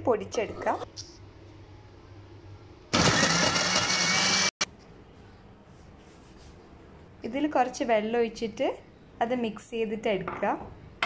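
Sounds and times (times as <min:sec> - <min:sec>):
mixer grinder motor running: 0:02.9 - 0:04.7.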